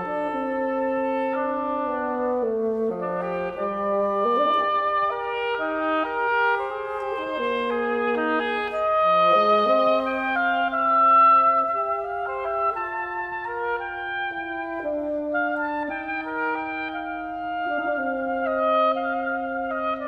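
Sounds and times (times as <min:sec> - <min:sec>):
reed quintet playing chamber music: 0:00.0 - 0:20.0.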